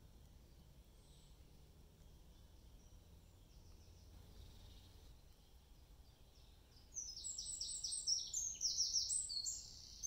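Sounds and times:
songbird singing: 0.0 - 10.0.

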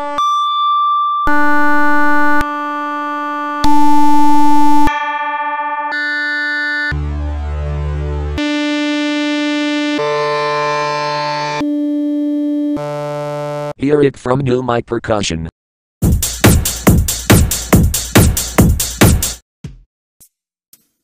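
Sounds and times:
held electronic tones: 1.3 - 5.0.

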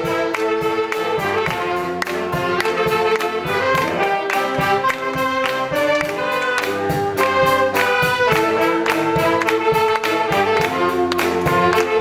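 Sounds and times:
saxophone ensemble playing: 0.0 - 12.0.

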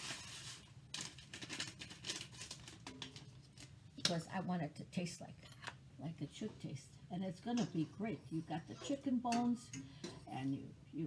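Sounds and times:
paper packet rustling: 0.0 - 3.8.

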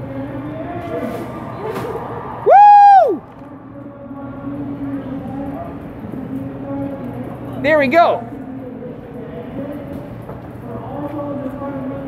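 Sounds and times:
background noise: 0.0 - 12.0
person whooping: 2.4 - 3.3.

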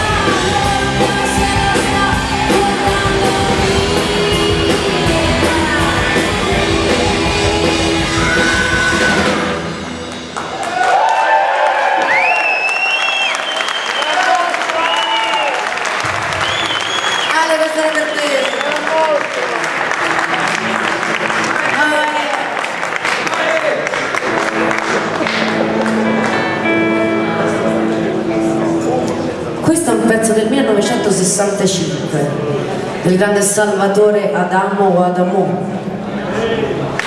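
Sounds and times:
woman singing long sliding notes: 0.0 - 9.6
live rock band playing: 0.0 - 10.9, 19.6 - 23.0, 24.0 - 33.1
audience applause: 10.0 - 26.6.

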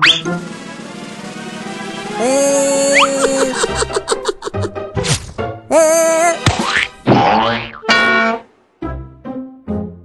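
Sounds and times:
children's background music: 7.8 - 10.0.

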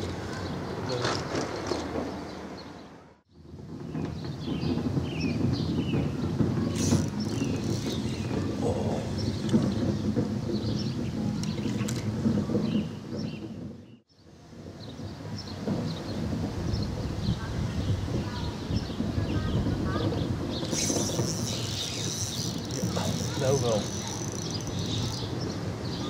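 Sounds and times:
wind rumbling on microphone: 3.3 - 26.0.

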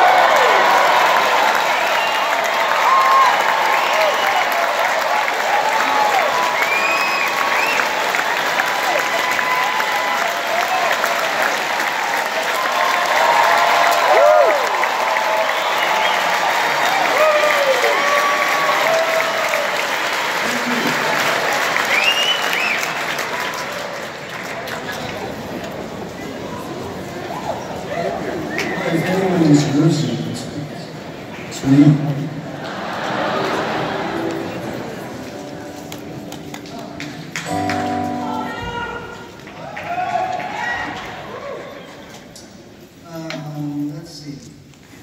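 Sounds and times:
shouts: 0.0 - 7.8, 12.5 - 19.8, 38.4 - 42.0
audience applauding: 0.0 - 29.7, 31.2 - 42.2
whistles: 1.8 - 2.4, 3.8 - 4.6, 6.4 - 7.9, 15.4 - 16.4, 21.9 - 23.0, 28.5 - 28.9.

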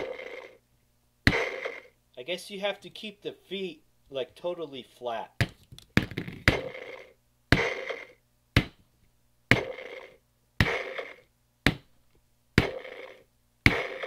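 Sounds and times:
electronic stomping sound effect: 1.2 - 1.9, 5.4 - 6.8, 7.5 - 8.0, 8.6 - 8.8, 9.5 - 10.0, 10.6 - 11.9, 12.6 - 13.0, 13.6 - 14.0.

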